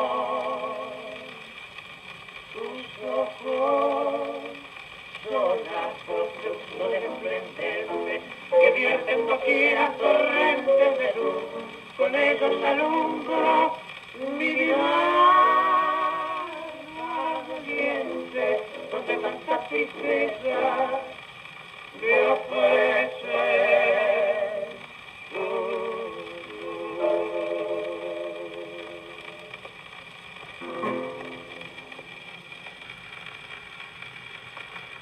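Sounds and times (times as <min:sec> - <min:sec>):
record surface hiss: 0:00.0 - 0:35.0
male vocal duet: 0:02.6 - 0:21.2, 0:22.0 - 0:28.9
piano chords: 0:30.6 - 0:32.2.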